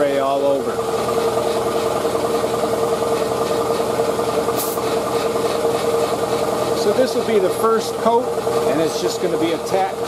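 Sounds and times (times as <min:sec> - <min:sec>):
air compressor humming: 0:00.0 - 0:10.0
air hiss: 0:04.4 - 0:05.6.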